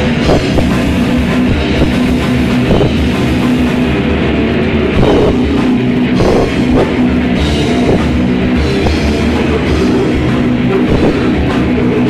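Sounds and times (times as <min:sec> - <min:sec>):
distorted guitars: 0:00.0 - 0:12.0
drum kit: 0:00.0 - 0:12.0.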